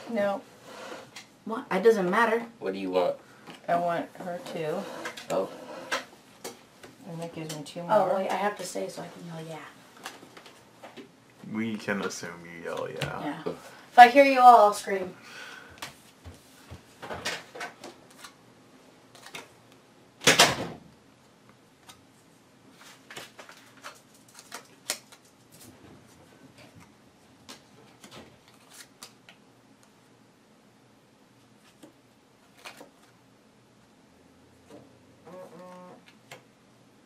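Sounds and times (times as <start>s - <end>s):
playing cards clicking and flicking: 19.1s - 19.6s, 22.8s - 25.7s, 31.6s - 33.2s.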